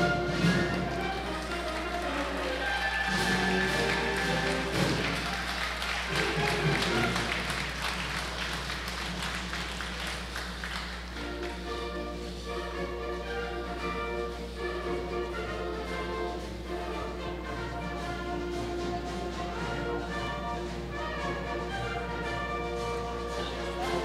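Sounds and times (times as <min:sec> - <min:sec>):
audience clapping: 0:00.0 - 0:12.0, 0:23.0 - 0:24.0
orchestral music: 0:00.0 - 0:24.0.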